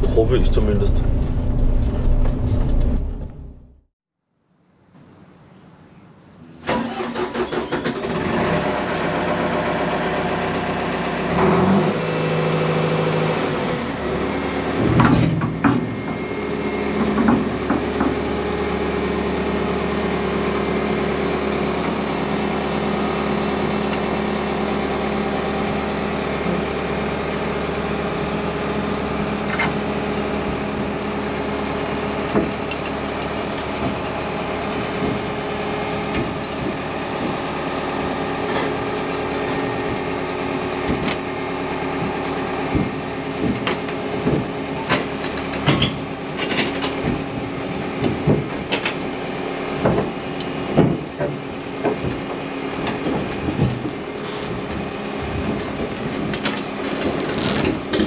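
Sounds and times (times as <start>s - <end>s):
diesel engine starting and running: 0.0s - 3.9s, 6.4s - 58.0s.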